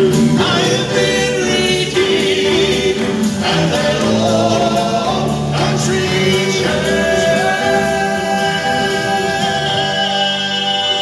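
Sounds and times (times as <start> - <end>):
male vocal quartet singing in harmony: 0.0 - 11.0.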